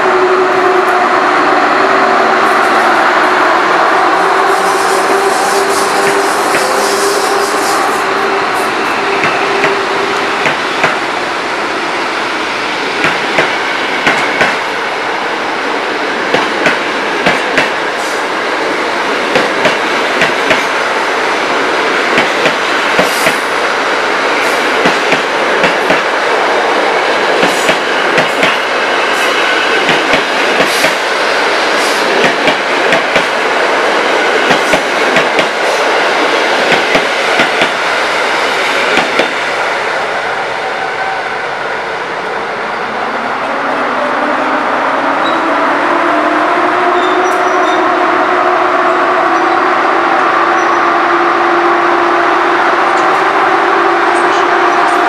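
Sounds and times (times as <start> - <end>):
train coaches rumbling on rails: 0.0 - 55.0.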